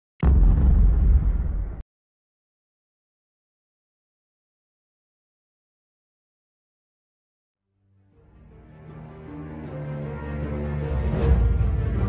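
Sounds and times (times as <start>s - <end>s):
deep boom sound effect: 0.2s - 1.8s.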